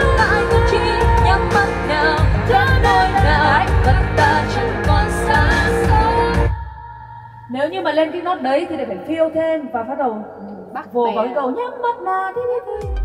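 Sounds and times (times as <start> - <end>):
instrumental backing music: 0.0 - 6.7, 12.4 - 13.0
woman singing pop song: 0.0 - 8.2, 11.4 - 13.0.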